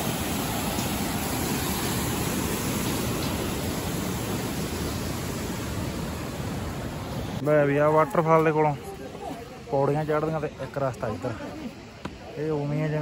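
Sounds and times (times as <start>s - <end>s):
stream cascading down waterfall: 0.0s - 13.0s.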